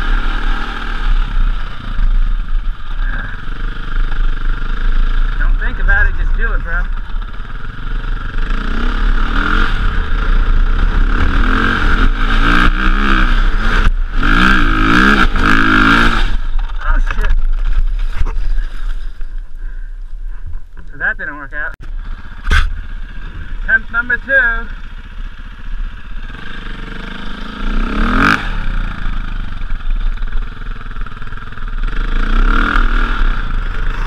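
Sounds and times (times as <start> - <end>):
dirt bike engine revving: 0.0 - 19.8, 21.9 - 34.0.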